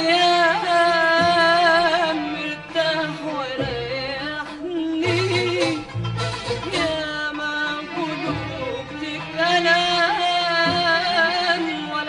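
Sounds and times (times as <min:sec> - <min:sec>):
orchestra with strings: 0:00.0 - 0:12.0.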